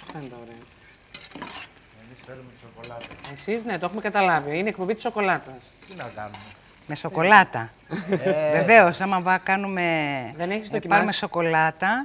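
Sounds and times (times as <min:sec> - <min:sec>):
utensil scraping pot: 0:00.0 - 0:07.1
dough frying in hot oil: 0:00.0 - 0:12.0.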